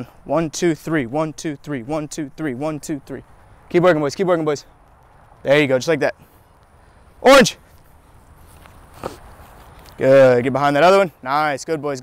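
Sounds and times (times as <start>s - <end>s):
footsteps running on grass: 7.5s - 10.2s.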